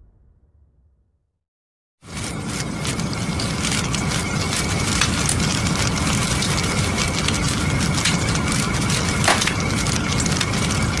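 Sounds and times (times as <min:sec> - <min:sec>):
fire crackling: 0:02.0 - 0:11.0.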